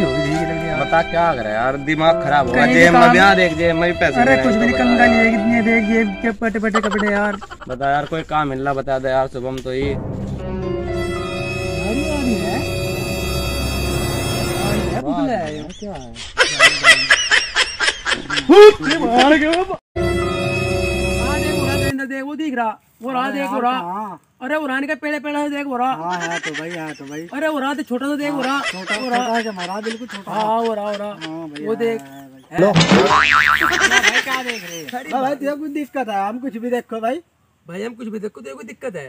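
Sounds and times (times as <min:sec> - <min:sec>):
person laughing: 0:06.6 - 0:08.3, 0:15.3 - 0:19.8, 0:26.1 - 0:27.3, 0:28.3 - 0:31.9
cartoon boing: 0:32.8 - 0:33.9.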